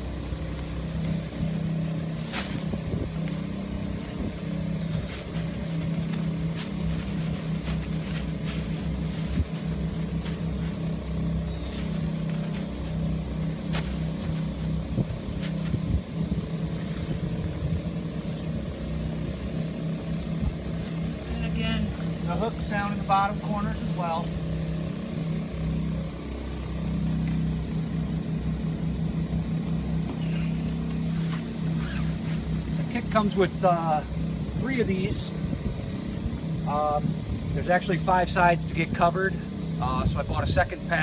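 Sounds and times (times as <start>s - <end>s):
low motor drone: 0.0s - 41.0s
fabric and straps rustling: 0.3s - 24.5s, 30.0s - 33.3s.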